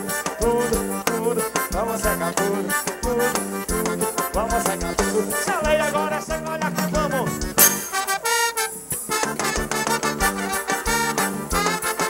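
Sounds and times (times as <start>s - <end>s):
live band playing instrumental: 0.0s - 12.0s.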